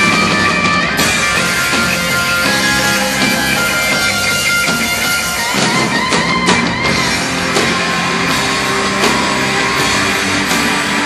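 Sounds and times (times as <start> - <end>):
distorted electric guitars: 0.0 - 11.0
live rock band playing: 0.0 - 11.0.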